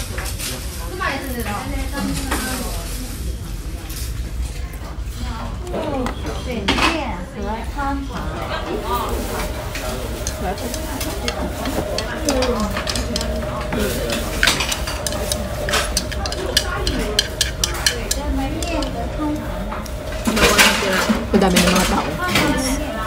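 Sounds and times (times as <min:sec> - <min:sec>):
restaurant background chatter: 0:00.0 - 0:23.0
chopsticks scraping ceramic bowl: 0:09.4 - 0:19.2.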